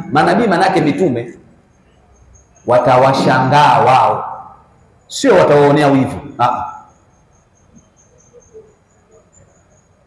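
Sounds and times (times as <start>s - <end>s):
insect chirping: 0.0s - 10.0s.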